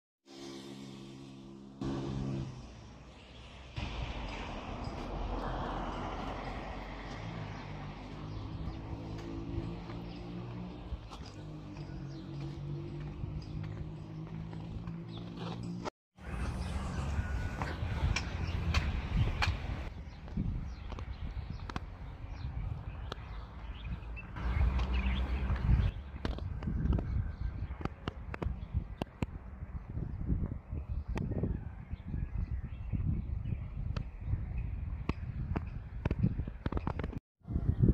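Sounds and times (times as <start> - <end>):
vehicle passing by: 0.3 - 19.9, 24.2 - 26.2
footsteps on stone stairs: 8.0 - 15.9.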